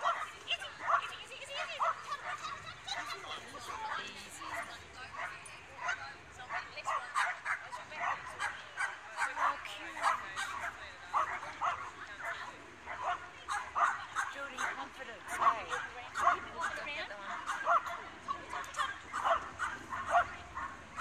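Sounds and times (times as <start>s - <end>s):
dog barking and yipping: 0.0s - 3.3s, 12.9s - 21.0s.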